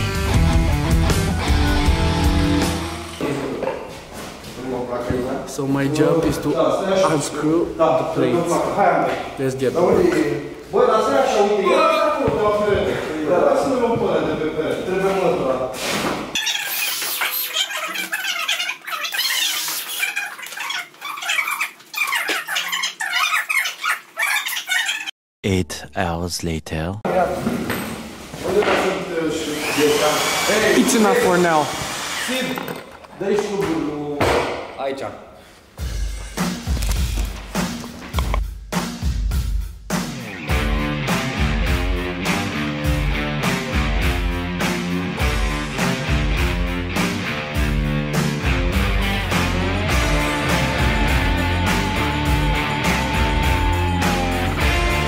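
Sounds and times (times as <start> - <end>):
sped-up squeaky chattering voices: 16.4 - 25.2
person talking: 25.4 - 27.1
music with drum beat: 35.8 - 36.8, 37.4 - 55.0.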